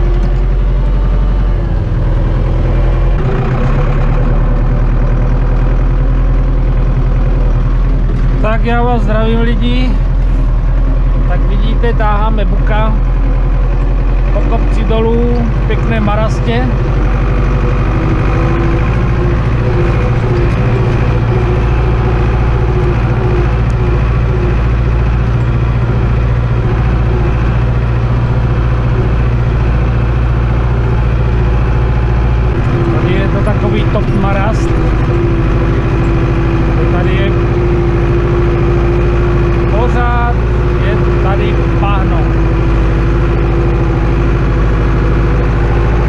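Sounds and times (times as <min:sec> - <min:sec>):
tractor diesel engine running: 0:00.0 - 0:46.0
person talking: 0:08.3 - 0:10.1, 0:11.2 - 0:13.1, 0:14.3 - 0:16.8, 0:32.8 - 0:34.9, 0:36.7 - 0:37.4, 0:39.6 - 0:42.4.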